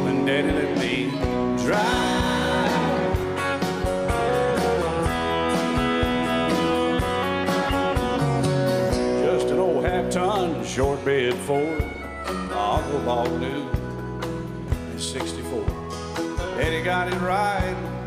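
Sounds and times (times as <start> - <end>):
guitars: 0.0 - 18.0
steady drum beat: 0.0 - 18.0.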